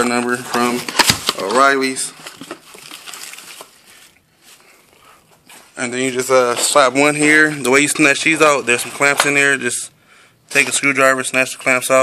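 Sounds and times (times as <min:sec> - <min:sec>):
plastic bag rustling: 0:00.6 - 0:04.8.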